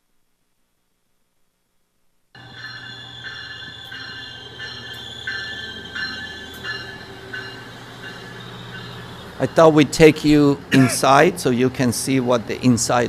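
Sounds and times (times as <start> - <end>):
train humming: 2.4 - 13.0.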